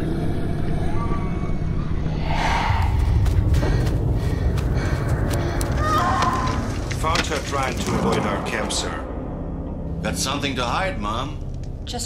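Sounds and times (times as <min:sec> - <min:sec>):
low rumbling drone: 0:00.0 - 0:05.8
rushing whoosh: 0:02.0 - 0:03.7.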